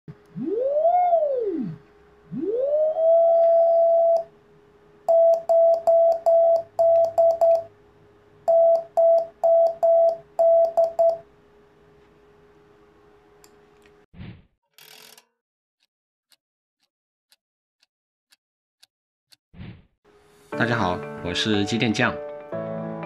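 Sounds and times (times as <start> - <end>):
morse code tone: 5.1 - 7.7, 8.5 - 11.2.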